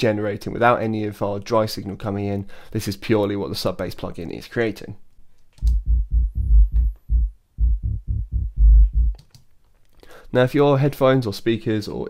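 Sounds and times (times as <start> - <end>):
deep sub-bass notes: 5.6 - 9.2.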